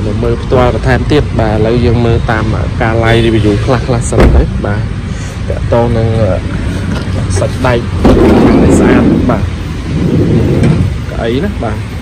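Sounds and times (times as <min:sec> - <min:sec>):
man speaking: 0:00.0 - 0:09.6, 0:11.1 - 0:11.9
loud rumbling rush: 0:03.8 - 0:12.0
steady low rumble: 0:03.9 - 0:11.8.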